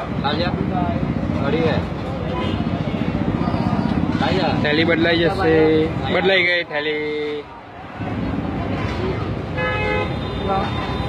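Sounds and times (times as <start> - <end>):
road traffic rumble: 0.0 - 11.0
vehicle horn toot: 9.6 - 11.0.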